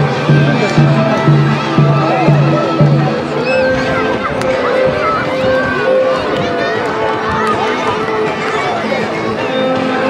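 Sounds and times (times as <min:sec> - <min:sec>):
children cheering and shouting: 0:00.0 - 0:10.0.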